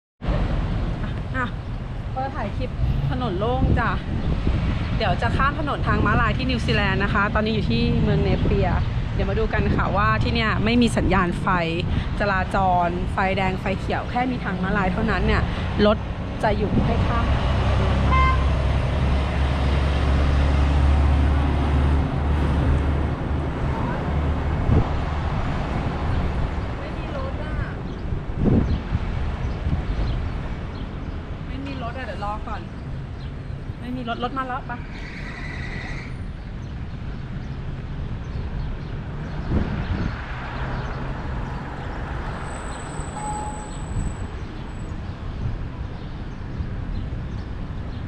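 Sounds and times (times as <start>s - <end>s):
light traffic noise: 0.2s - 48.0s
heavy truck driving past: 14.8s - 26.7s.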